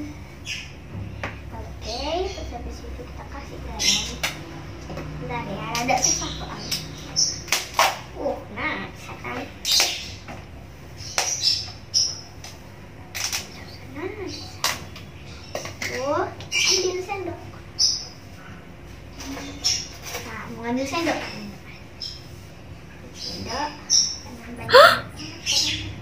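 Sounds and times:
child's wordless vocal sounds: 24.6s - 25.2s.

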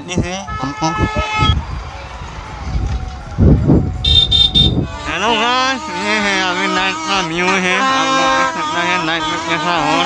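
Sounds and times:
street noise: 0.0s - 10.0s
vehicle horn: 0.4s - 1.6s, 4.0s - 10.0s.

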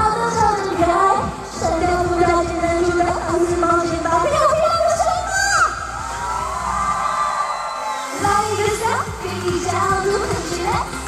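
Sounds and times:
bass: 0.0s - 7.4s, 8.2s - 11.0s.

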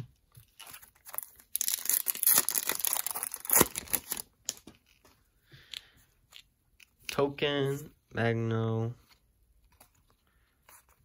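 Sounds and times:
foil wrapper tearing and crackling: 0.6s - 4.3s
soft rustles of cards: 4.5s - 11.0s.

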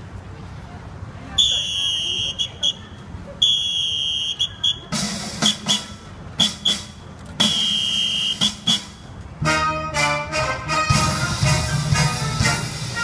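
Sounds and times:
shrill whistle blasts: 1.4s - 2.8s, 3.4s - 9.0s
drum beats: 4.9s - 9.1s, 10.8s - 13.0s.

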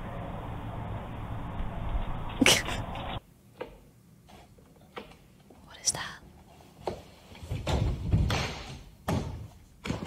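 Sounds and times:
person sneezing: 2.4s - 2.8s.

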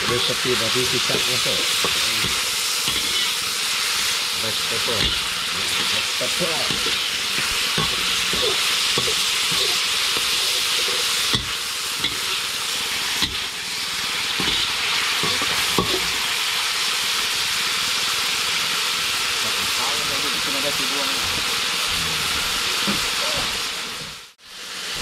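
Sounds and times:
metal ladle scraping a wok: 0.0s - 16.2s
chicken sizzling in a wok: 0.0s - 25.0s.

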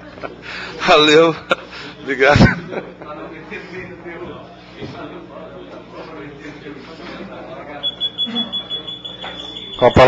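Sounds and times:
faint voices murmuring: 0.0s - 10.0s
high-pitched electronic tone: 7.8s - 10.0s.

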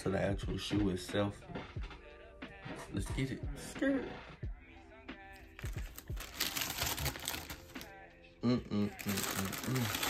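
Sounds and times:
background music with a beat: 0.0s - 10.0s
tissue paper crinkling: 5.6s - 7.9s, 9.0s - 10.0s.

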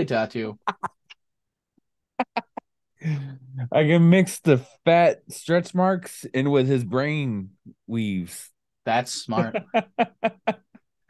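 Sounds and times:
man laughing: 9.3s - 10.8s.

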